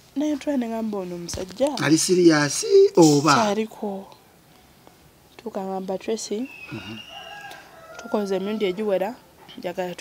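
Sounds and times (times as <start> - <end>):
rooster crowing: 6.5 - 9.2.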